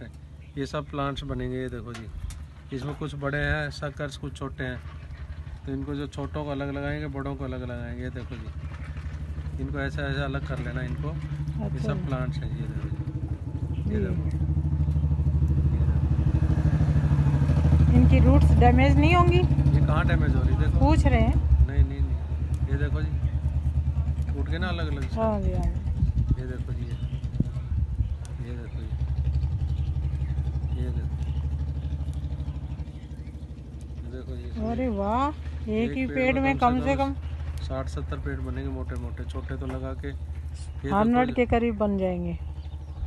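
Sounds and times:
engine throbbing: 0.0 - 43.0.

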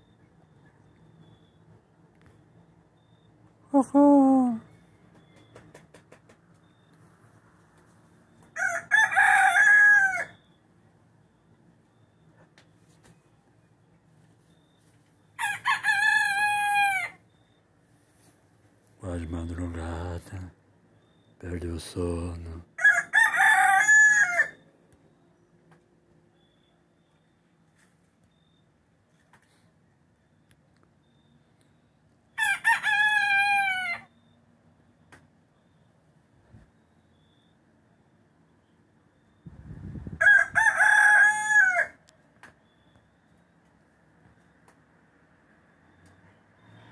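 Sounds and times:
rooster crowing: 8.5 - 10.5, 15.4 - 17.4, 22.8 - 24.6, 32.4 - 34.4, 40.1 - 42.1.

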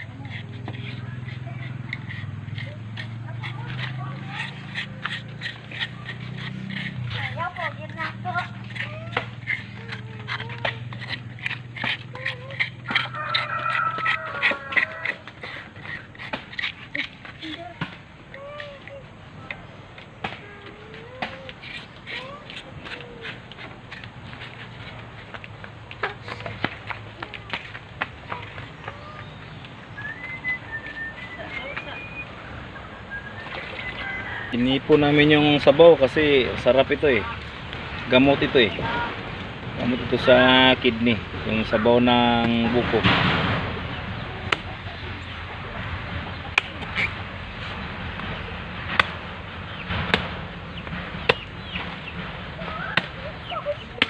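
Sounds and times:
metal spoon scraping coconut: 0.0 - 18.9, 21.2 - 25.4.

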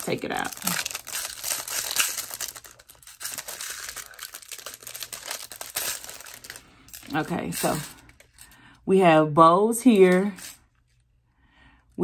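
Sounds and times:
plastic packaging crinkling: 0.0 - 8.6.

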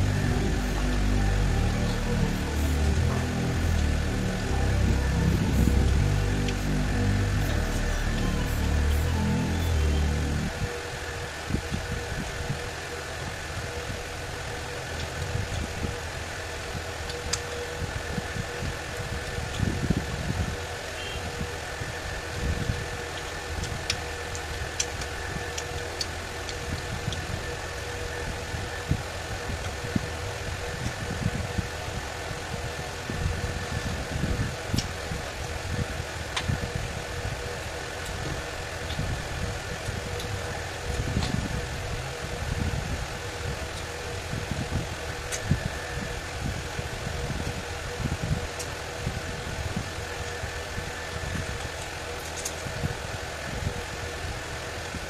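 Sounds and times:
steady mechanical hum: 0.0 - 55.0.

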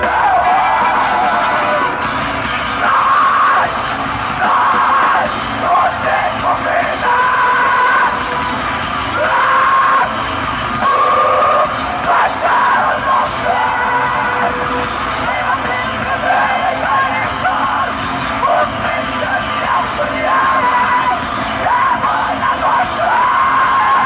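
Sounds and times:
metal band playing live: 0.0 - 24.0.

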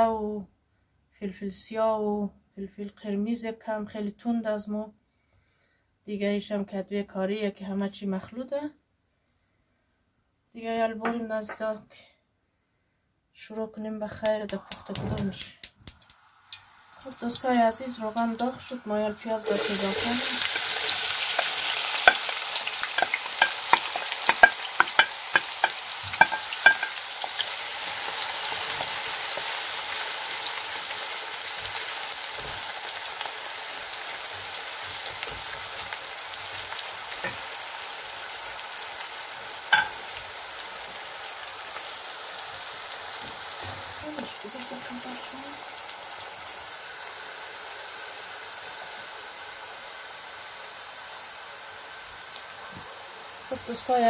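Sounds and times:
onions sizzling in hot oil: 14.2 - 54.0
utensil clacking against pot: 21.4 - 22.3, 23.0 - 27.0.

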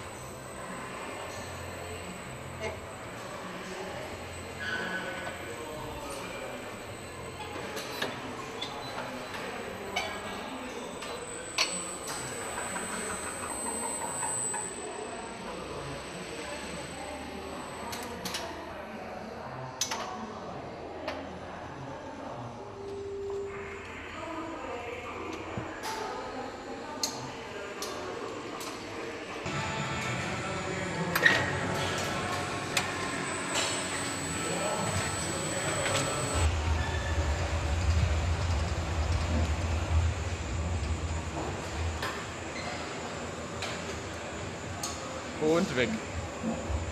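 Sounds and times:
overhead conveyor running: 0.0 - 18.4, 29.4 - 46.9.

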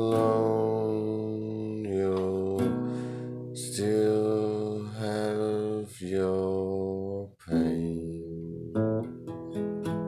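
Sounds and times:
acoustic guitar chords strummed: 0.0 - 4.9, 7.5 - 10.0.

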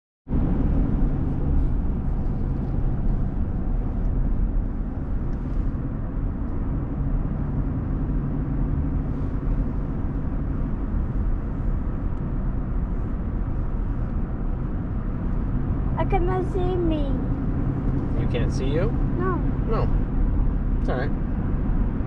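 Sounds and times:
diesel engine and tyres rumbling: 0.3 - 22.0.

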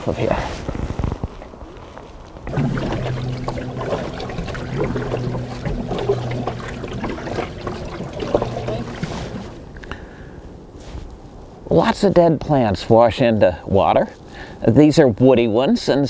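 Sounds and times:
paddle splashing in water: 2.4 - 9.7
low steady hum: 2.4 - 10.7.

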